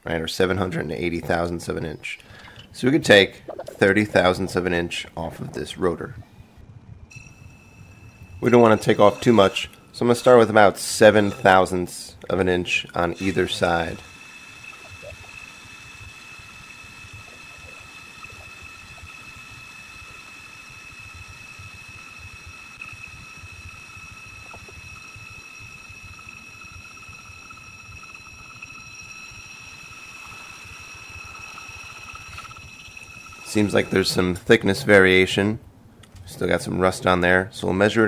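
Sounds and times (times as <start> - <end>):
brake lathe whining: 7.1 - 34.6.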